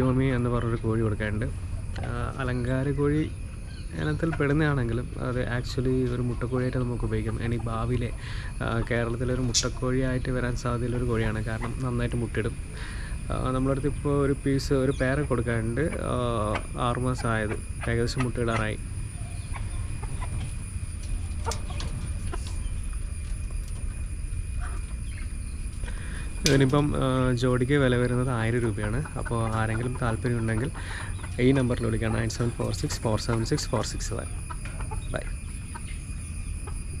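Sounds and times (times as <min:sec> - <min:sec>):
chickens clucking: 0:00.0 - 0:37.0
low steady rumble: 0:00.0 - 0:37.0.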